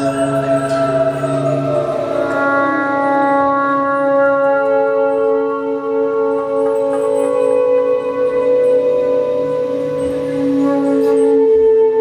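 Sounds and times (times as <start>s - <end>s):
ambient space rock drone: 0.0s - 12.0s.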